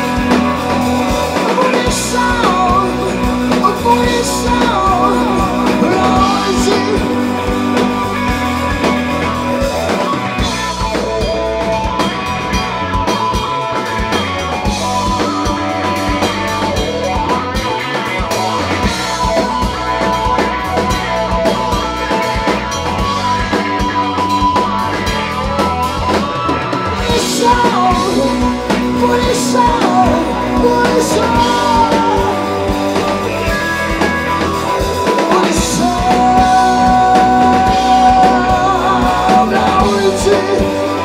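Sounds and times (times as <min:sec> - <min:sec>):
rock band playing live: 0:00.0 - 0:41.0.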